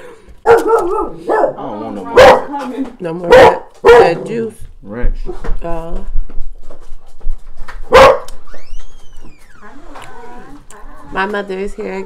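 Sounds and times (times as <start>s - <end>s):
dog barking: 0.4s - 2.6s, 3.2s - 4.4s, 7.9s - 8.4s.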